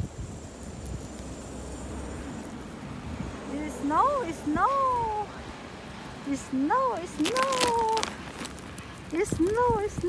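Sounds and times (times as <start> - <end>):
wind buffeting microphone: 0.0 - 1.4, 2.6 - 5.7, 7.0 - 10.0.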